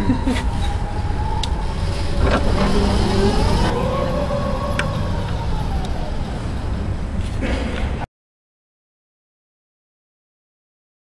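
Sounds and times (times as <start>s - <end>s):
electric drive rumble and whine: 0.0s - 8.1s.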